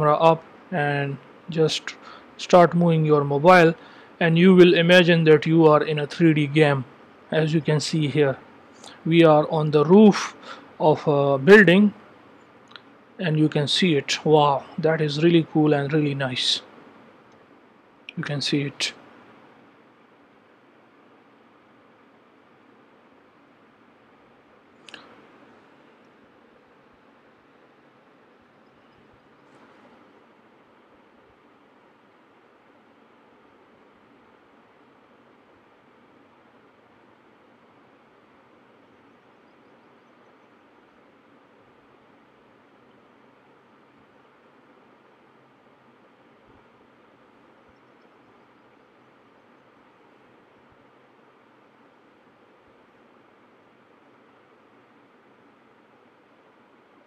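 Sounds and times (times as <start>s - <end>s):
faint steady hiss: 0.0s - 57.0s.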